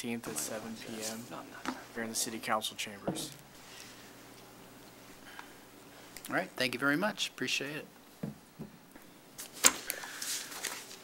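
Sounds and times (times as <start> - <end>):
paper rustle: 9.6 - 11.0.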